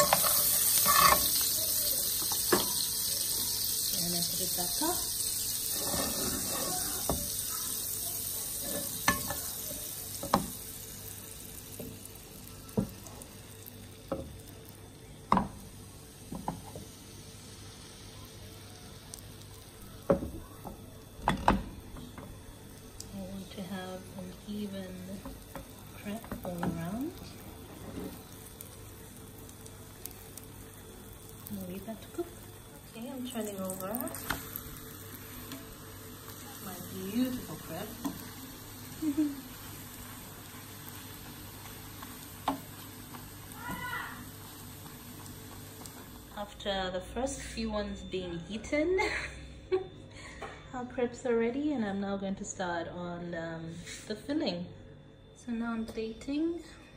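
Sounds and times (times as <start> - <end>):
batter sizzling in frying pan: 0.0 - 48.0.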